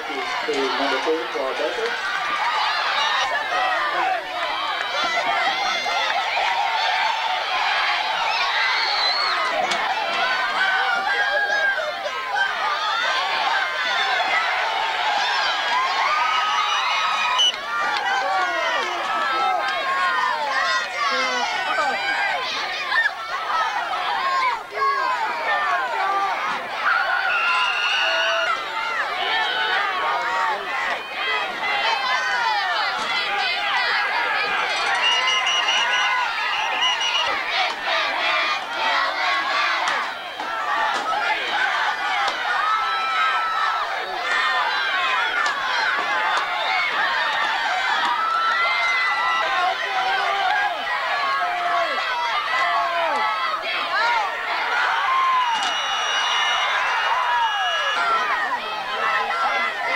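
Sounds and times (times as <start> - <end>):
spectators shouting and cheering: 0.0 - 59.9
shrill whistle: 8.6 - 9.5, 17.2 - 17.6, 27.2 - 28.4, 34.9 - 37.4, 55.4 - 58.2.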